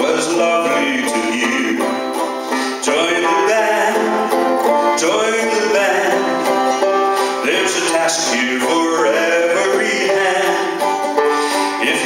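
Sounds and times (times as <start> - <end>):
acoustic folk band playing: 0.0 - 12.0
banjo picking: 0.0 - 12.0.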